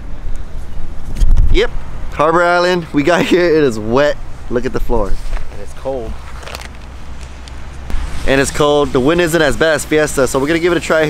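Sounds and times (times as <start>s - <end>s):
wind rumbling on microphone: 0.0s - 2.2s.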